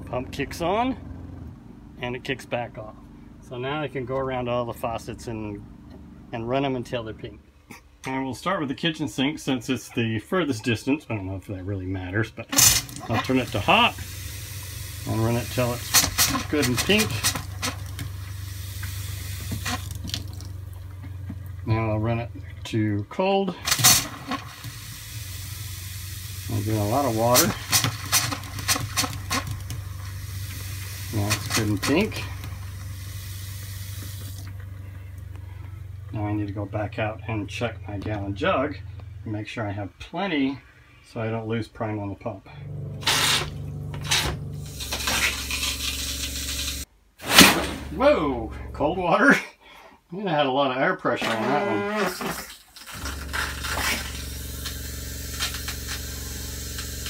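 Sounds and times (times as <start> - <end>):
water pump pulsing hum: 12.5 - 39.1, 42.5 - 46.9, 52.9 - 57.0
faucet stream into steel sink: 12.6 - 20.6, 23.7 - 34.5, 44.7 - 46.9, 52.1 - 57.0.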